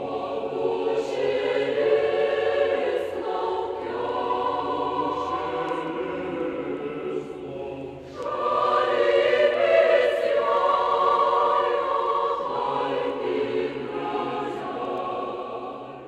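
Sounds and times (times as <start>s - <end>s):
choir singing sustained chords: 0.0s - 16.0s.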